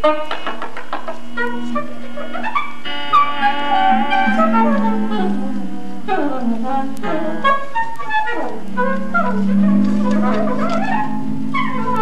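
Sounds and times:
saxophone: 0.0 - 12.0.

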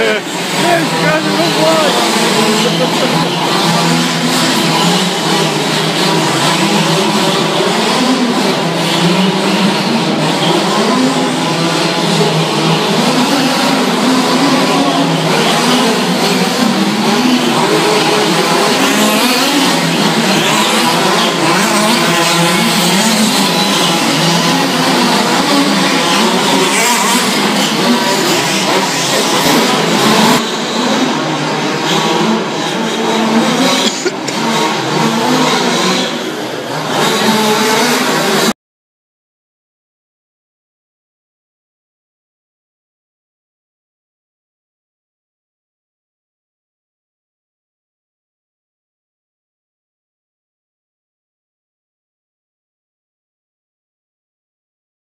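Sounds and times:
two-stroke engines revving in a hall: 0.0 - 38.6.

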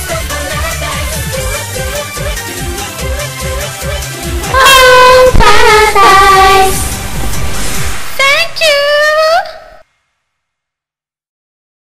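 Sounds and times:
female voice singing pop song: 0.0 - 7.0.

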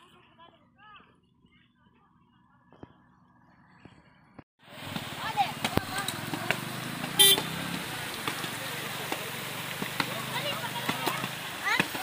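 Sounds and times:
short horn beep: 7.2 - 7.5.

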